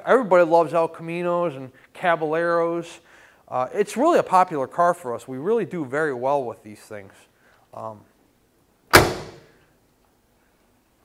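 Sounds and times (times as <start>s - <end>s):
car door slamming: 8.9s - 9.5s.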